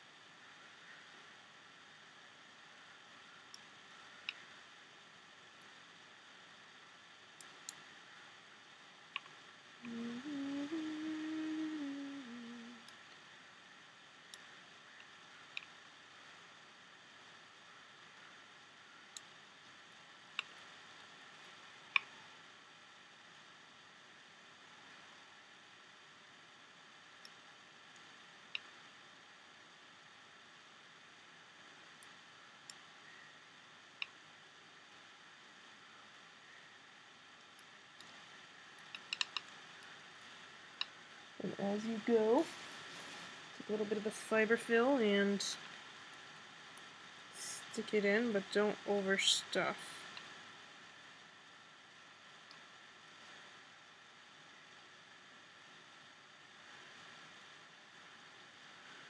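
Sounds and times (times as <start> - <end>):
person humming: 9.8 - 12.9.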